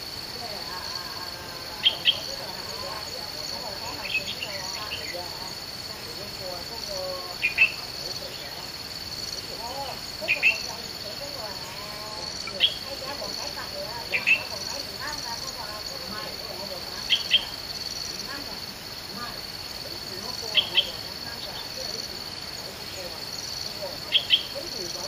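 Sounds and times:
faint wavering calls: 0.0 - 16.1
insect trilling: 0.0 - 25.0.

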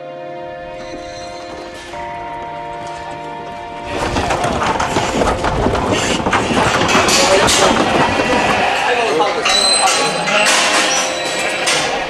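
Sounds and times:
sheep hooves clattering on metal: 0.6 - 12.0.

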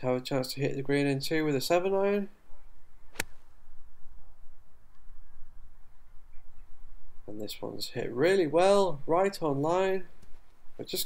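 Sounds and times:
golf club striking ball: 3.1 - 3.5.

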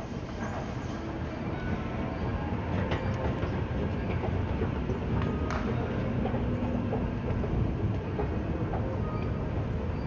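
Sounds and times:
moving walkway rumbling: 0.0 - 10.0.

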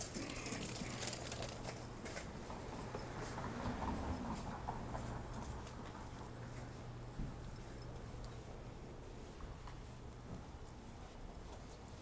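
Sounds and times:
footsteps on sidewalk: 0.0 - 12.0
low traffic hum: 0.0 - 12.0
vehicle passing: 2.2 - 7.9.

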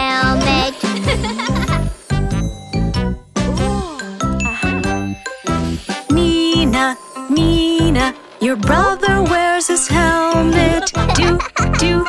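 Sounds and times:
children's song music with chimes: 0.0 - 11.5.

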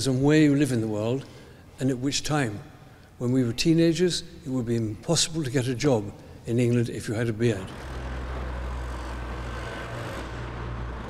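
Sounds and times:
road traffic rumble: 7.6 - 11.0.

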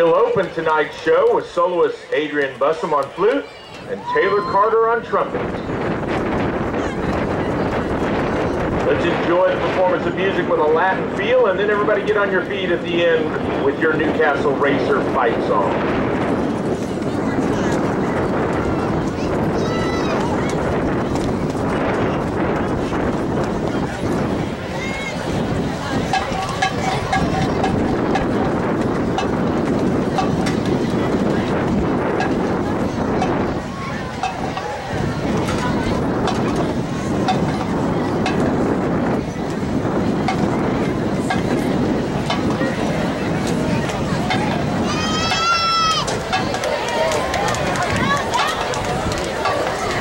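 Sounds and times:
spectators chattering: 0.0 - 50.0
wind on microphone: 0.0 - 50.0.

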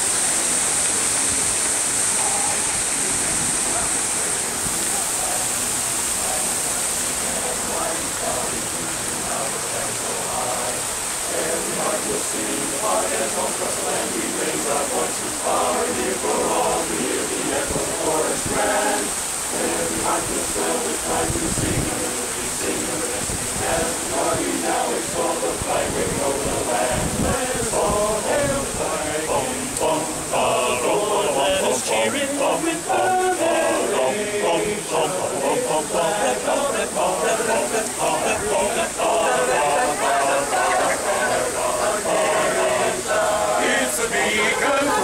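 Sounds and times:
crowd chatter: 0.0 - 45.0
fountain splashing: 0.0 - 45.0
men's chorus singing: 2.1 - 45.0.

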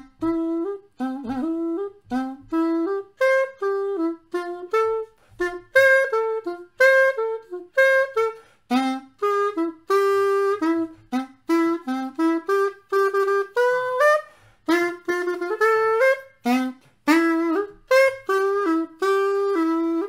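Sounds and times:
pocket woodwind playing quick notes: 0.0 - 20.0.

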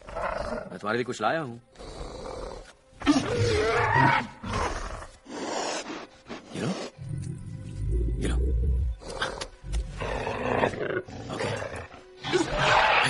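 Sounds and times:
tense orchestral music: 0.0 - 13.0.

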